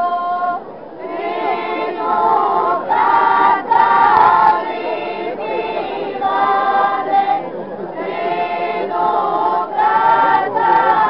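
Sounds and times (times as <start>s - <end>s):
women singing unaccompanied: 0.0s - 11.0s.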